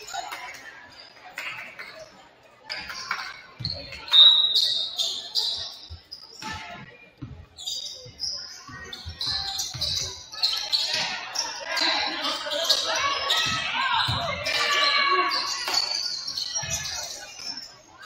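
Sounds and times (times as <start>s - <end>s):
sneakers squeaking: 2.7s - 18.0s.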